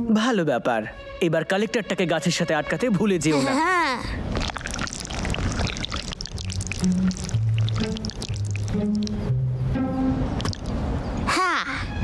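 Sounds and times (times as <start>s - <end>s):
cartoon glue oozing clicks: 10.4s - 10.8s.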